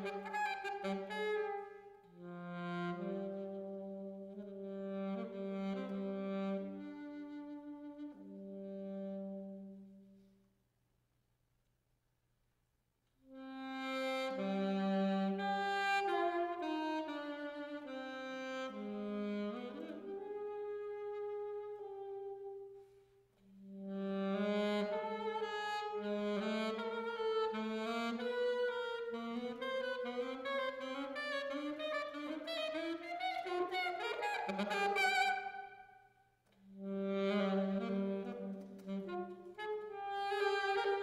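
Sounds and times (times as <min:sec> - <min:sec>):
saxophone solo: 0:00.0 - 0:10.3, 0:13.2 - 0:41.0.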